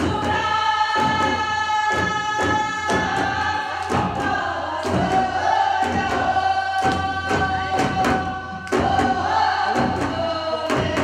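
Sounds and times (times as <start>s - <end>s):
barrel drums beating: 0.0s - 11.0s
voices singing together: 0.0s - 11.0s.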